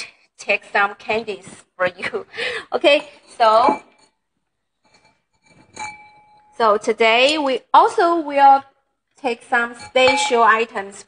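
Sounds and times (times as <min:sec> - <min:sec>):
porcelain lamp clinking: 0:03.2 - 0:07.6, 0:09.6 - 0:10.8.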